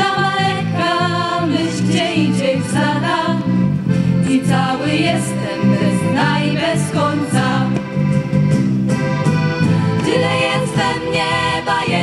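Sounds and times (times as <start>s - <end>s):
folk band playing: 0.0s - 12.0s.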